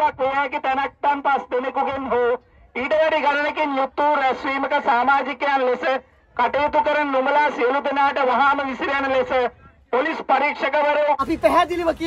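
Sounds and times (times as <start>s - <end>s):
man speaking through loudspeakers: 0.0s - 12.0s.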